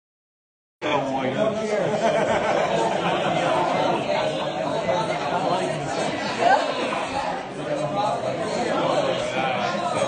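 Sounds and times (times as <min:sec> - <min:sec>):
diners talking: 0:00.8 - 0:10.0.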